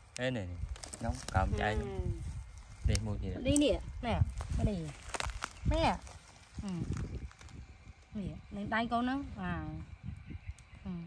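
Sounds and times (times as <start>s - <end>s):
grass and plants rustling: 0.0s - 10.9s.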